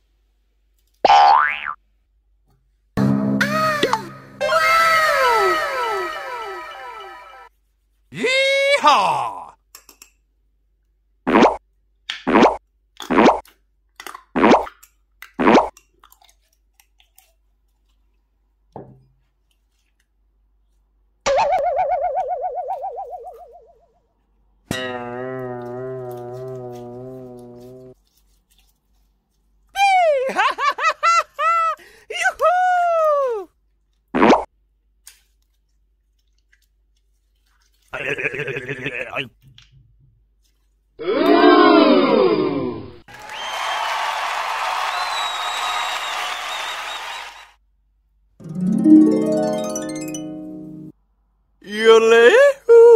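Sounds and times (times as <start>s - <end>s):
cartoon zips: 3.4s - 7.5s, 11.3s - 11.6s, 12.3s - 13.4s, 34.2s - 34.5s.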